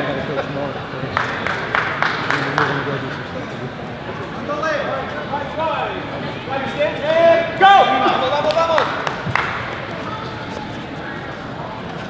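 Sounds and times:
crowd chatter: 0:00.0 - 0:12.0
voices shouting in echoing hall: 0:04.4 - 0:11.6.

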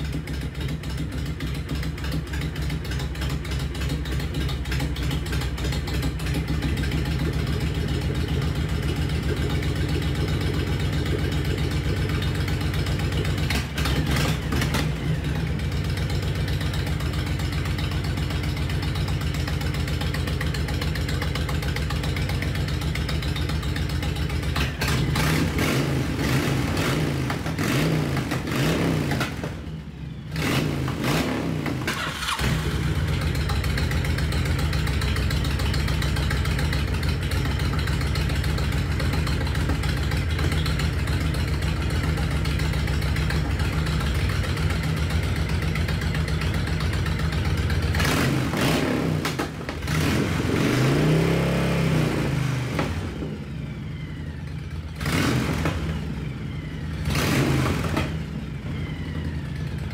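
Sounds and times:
motorcycle engine idling: 0:00.0 - 0:59.9.

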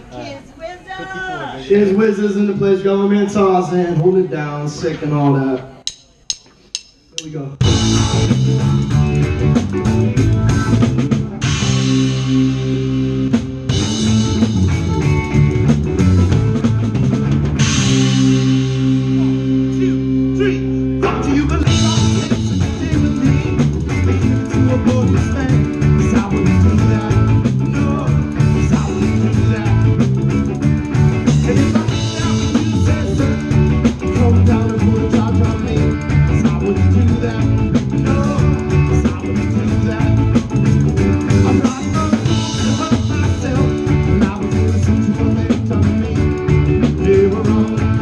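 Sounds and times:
drums: 0:00.0 - 0:48.0
live rock band playing: 0:00.9 - 0:48.0.

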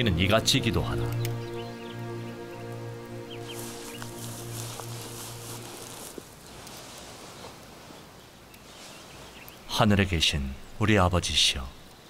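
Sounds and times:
soft film score music: 0:00.0 - 0:07.0
outdoor ambience hiss: 0:00.0 - 0:12.0
faint bird chirps: 0:06.9 - 0:09.8.

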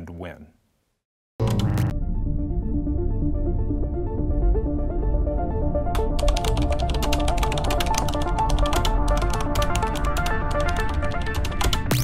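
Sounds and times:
background music: 0:01.4 - 0:12.0.

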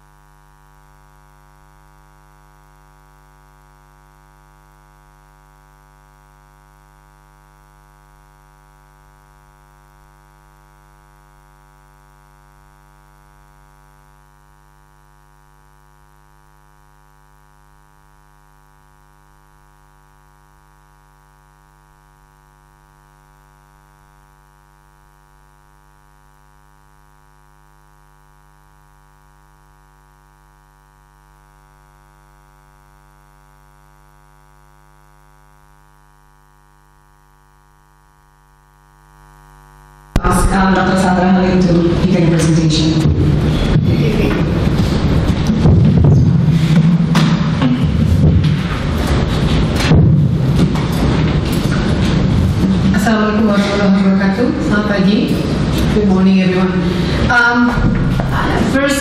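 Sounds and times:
electrical mains hum: 0:35.2 - 0:59.0.

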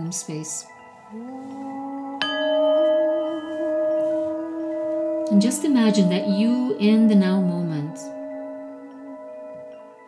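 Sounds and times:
low steady tone: 0:00.0 - 0:10.0
singing bowl ringing: 0:00.0 - 0:10.0.

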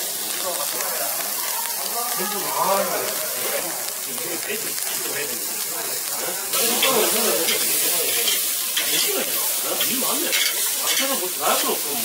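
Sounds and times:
beef sizzling on a grill: 0:00.0 - 0:12.0
small crackles: 0:00.3 - 0:06.3.

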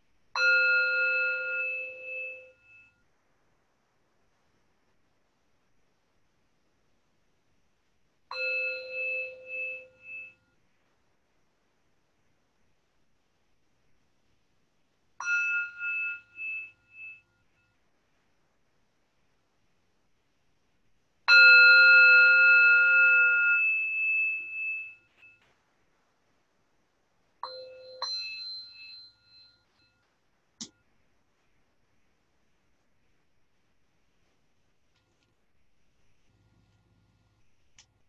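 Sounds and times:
meditation bell ringing: 0:00.4 - 0:03.0, 0:08.3 - 0:10.6, 0:15.2 - 0:17.8, 0:27.4 - 0:30.1.

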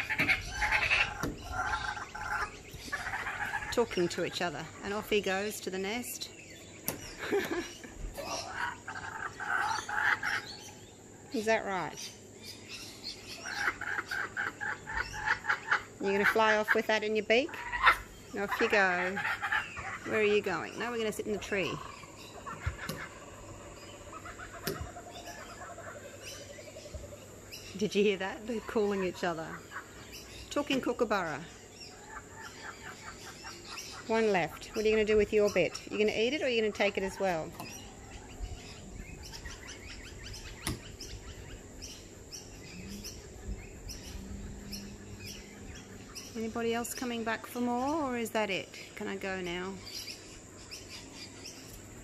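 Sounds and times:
kookaburras calling: 0:00.0 - 0:52.0.

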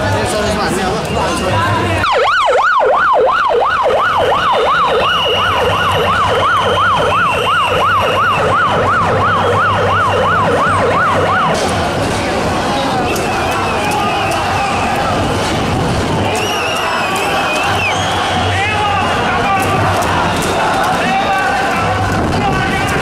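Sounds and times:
crowd noise: 0:00.0 - 0:23.0
emergency siren yelping: 0:02.0 - 0:11.8.

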